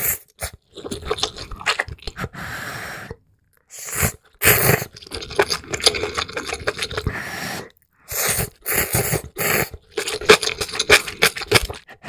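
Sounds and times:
slurping noodles: 0.0 - 12.0
wet chewing: 0.2 - 2.3, 3.6 - 12.0.

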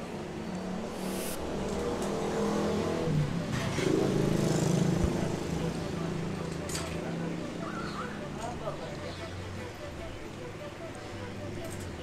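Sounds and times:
vehicle engine passing by: 0.6 - 6.4.

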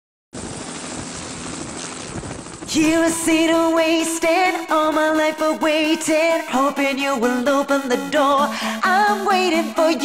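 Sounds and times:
helicopter flying: 0.4 - 3.6.

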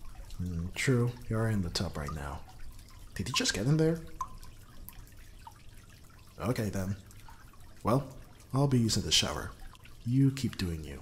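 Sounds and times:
faint water hiss: 0.0 - 11.0
water dripping: 0.0 - 11.0.

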